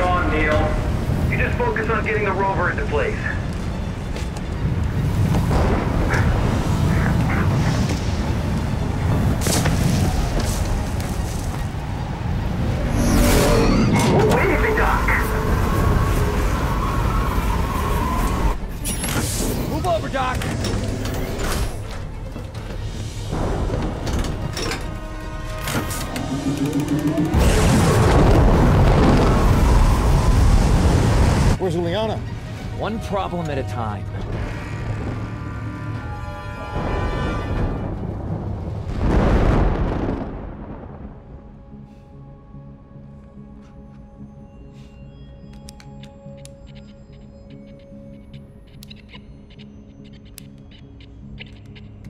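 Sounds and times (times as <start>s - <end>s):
dramatic music: 0.0s - 52.0s
deep rumbling booms: 4.9s - 10.9s, 27.3s - 31.6s, 36.8s - 41.6s.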